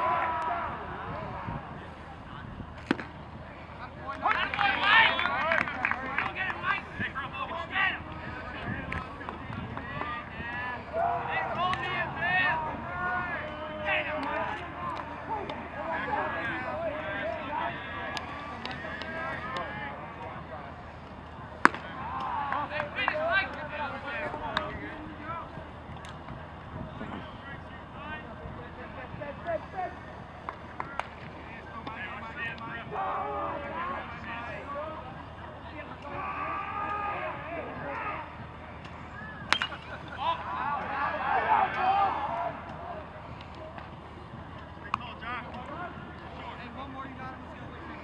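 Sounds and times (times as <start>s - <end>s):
voices calling out: 0.0s - 48.0s
baseball smacking into glove: 21.6s - 21.9s.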